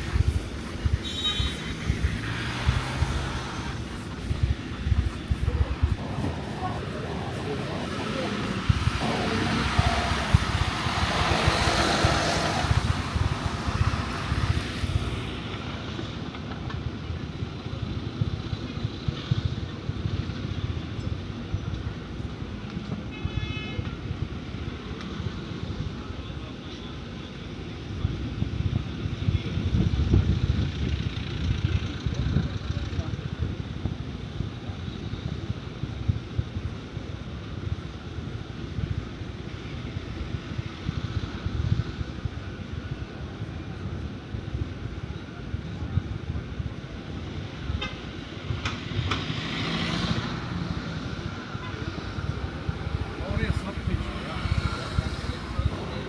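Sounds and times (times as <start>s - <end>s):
street traffic: 0.0s - 56.0s
car horn toot: 1.0s - 1.7s.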